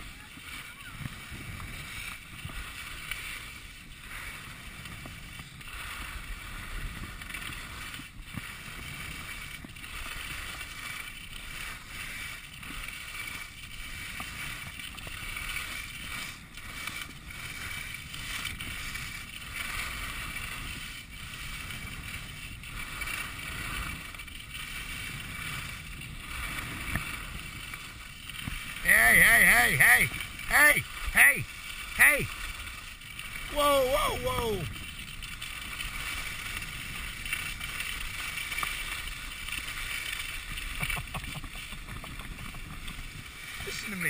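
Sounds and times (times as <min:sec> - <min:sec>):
skis scraping over snow: 0:00.0 - 0:44.0.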